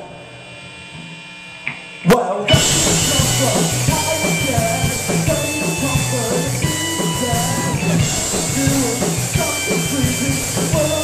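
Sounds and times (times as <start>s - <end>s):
amplifiers humming faintly: 0.0s - 11.0s
held band tones: 0.0s - 11.0s.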